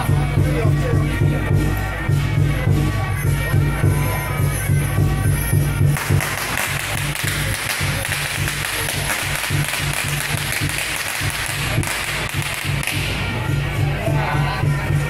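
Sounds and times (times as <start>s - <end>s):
crowd noise: 0.0s - 15.0s
procession music with rapid percussion: 0.0s - 15.0s.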